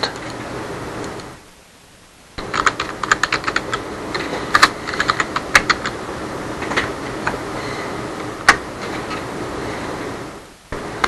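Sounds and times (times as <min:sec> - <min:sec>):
room noise hiss: 0:00.0 - 0:11.0
typing on computer keyboard: 0:02.4 - 0:06.0.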